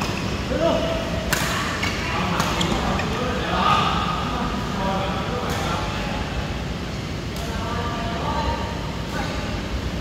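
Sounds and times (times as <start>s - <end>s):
rackets striking shuttlecock: 1.3s - 2.7s.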